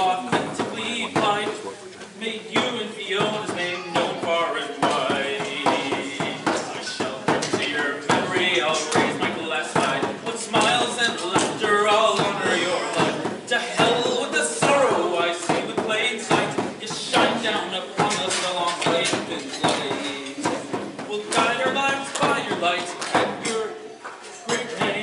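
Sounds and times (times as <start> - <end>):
frame drum beaten with a tipper: 0.0 - 23.7, 24.5 - 25.0
man singing: 0.0 - 25.0.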